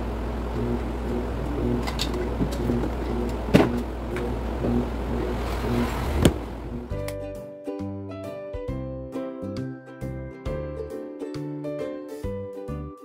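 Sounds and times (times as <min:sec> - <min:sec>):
low rumble: 0:00.0 - 0:07.0
background music with light melody: 0:06.7 - 0:13.0.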